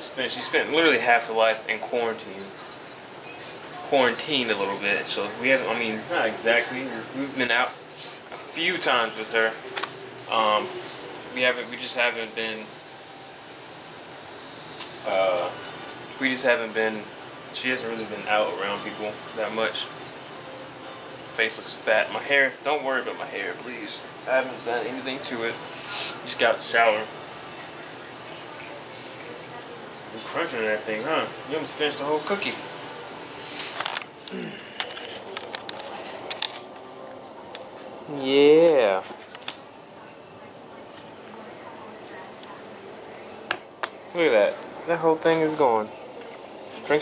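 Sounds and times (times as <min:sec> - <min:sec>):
fan hiss: 0:00.0 - 0:47.0.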